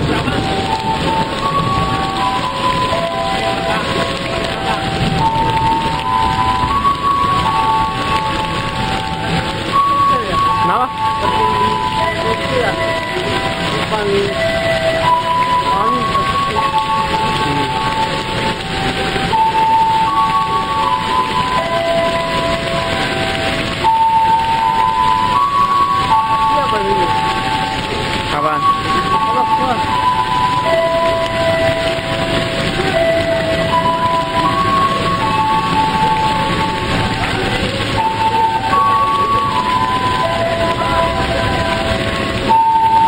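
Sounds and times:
heavy rain on roof: 0.0 - 43.0
simple tune of single notes: 0.0 - 43.0.

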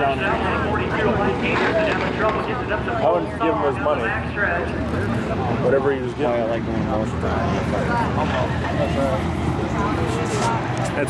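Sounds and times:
race car engines rumbling: 0.0 - 11.0
voices talking: 0.0 - 11.0.

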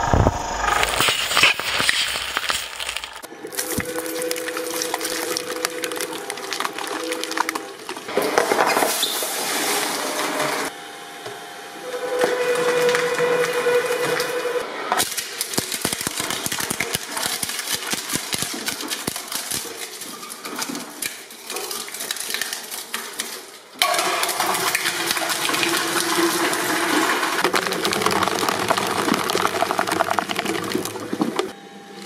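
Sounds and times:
blades cracking and crunching: 0.0 - 8.1, 15.0 - 25.4, 27.4 - 31.5
shredder humming: 0.0 - 17.5.

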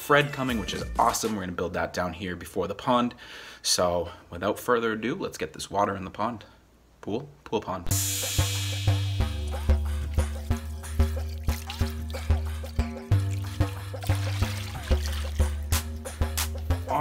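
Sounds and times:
background music with beat: 0.0 - 1.4, 7.9 - 17.0
water trickling into pool: 9.1 - 16.1.

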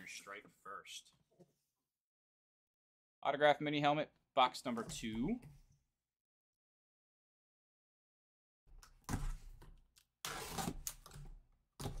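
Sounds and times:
box cutter slitting cardboard: 10.2 - 11.2.

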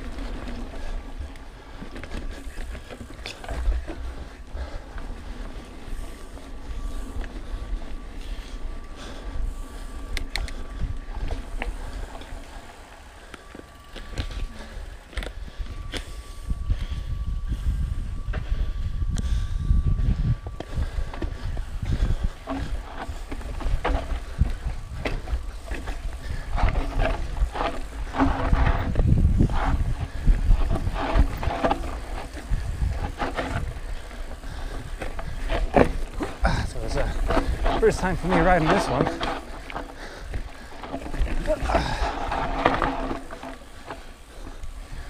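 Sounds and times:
wind and trail rumble: 0.0 - 45.0
bike rattling and knocking: 20.5 - 45.0.

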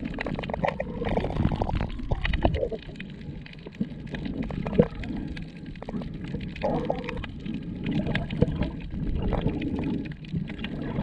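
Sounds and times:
water sloshing underwater: 0.0 - 11.0.

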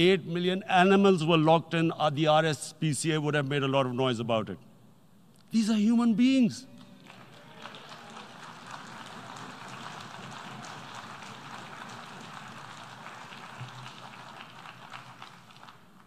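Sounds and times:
audience applause: 7.0 - 16.0.

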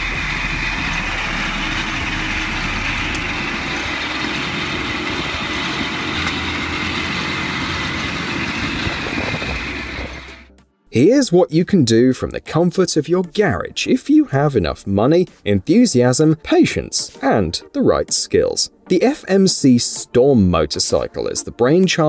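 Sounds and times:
motorcycle engine running steadily: 0.0 - 10.6.

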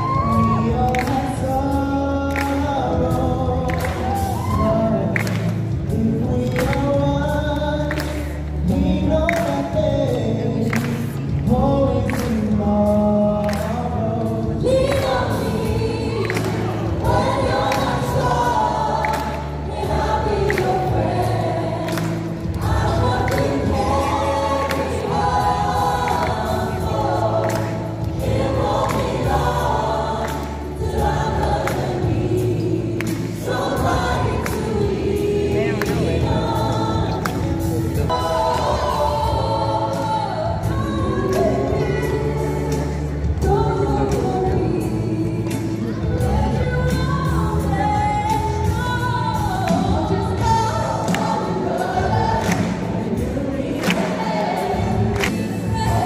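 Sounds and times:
choir singing with instruments: 0.0 - 56.0.

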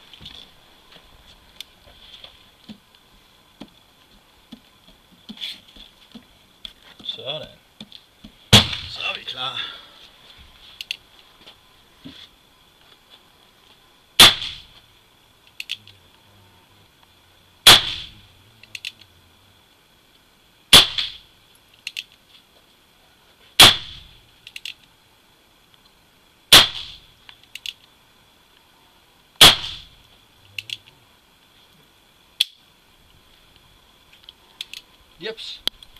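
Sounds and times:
revolver gunshots with echo: 8.5 - 9.1, 14.2 - 14.7, 17.6 - 18.2, 20.7 - 21.3, 23.6 - 24.2, 26.5 - 27.0, 29.4 - 30.0.

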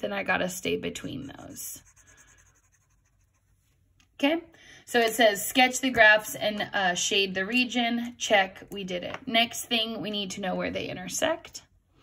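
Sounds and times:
highlighter scratching on paper: 1.0 - 3.8.

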